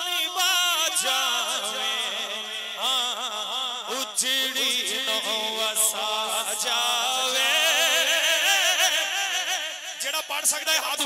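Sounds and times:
man singing unaccompanied: 0.0 - 9.9.

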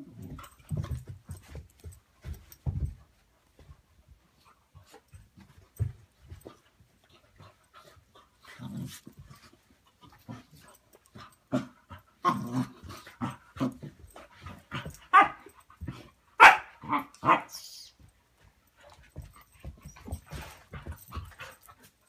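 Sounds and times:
dogs huffing while play-fighting: 0.0 - 17.0, 18.2 - 22.0.

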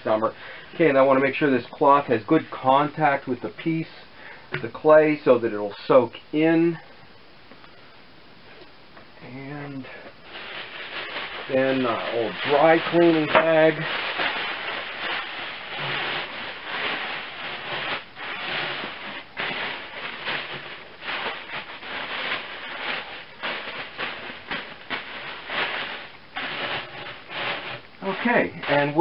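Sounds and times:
plastic bag crinkling: 9.8 - 29.0.

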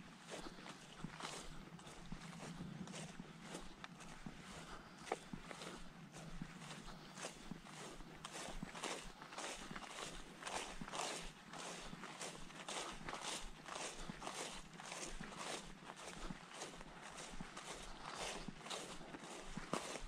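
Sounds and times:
footsteps through tall grass: 0.0 - 20.0.

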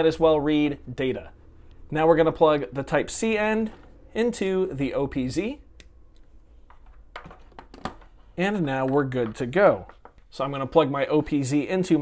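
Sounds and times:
handling clicks and knocks: 6.7 - 10.3.

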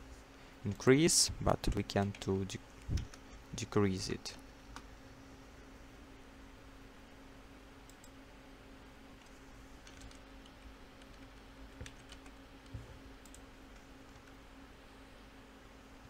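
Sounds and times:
low steady hum: 0.0 - 16.0
keyboard and mouse clicks: 9.2 - 10.2.

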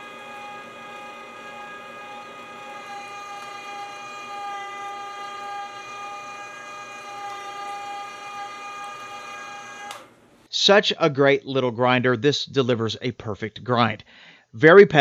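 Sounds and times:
meat grinder motor whine: 0.0 - 10.4.

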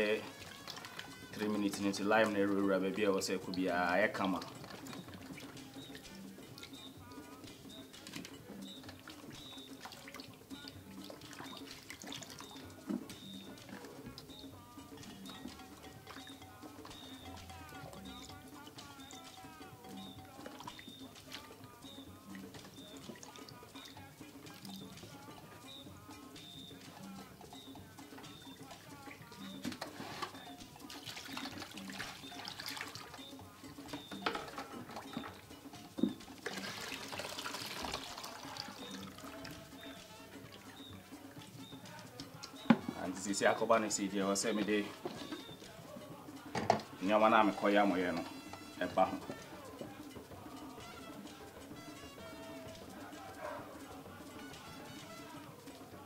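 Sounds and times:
background music with beat: 0.0 - 56.0
water sloshing and dripping: 0.0 - 56.0.

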